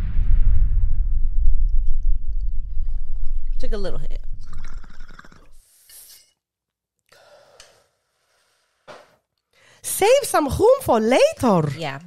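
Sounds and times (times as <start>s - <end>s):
person breathing out: 7.1s - 8.9s.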